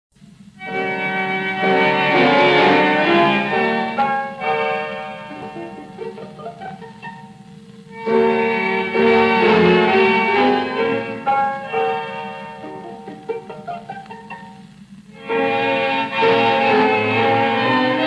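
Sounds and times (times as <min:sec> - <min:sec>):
orchestra playing waltz with violins: 0:15.3 - 0:18.0.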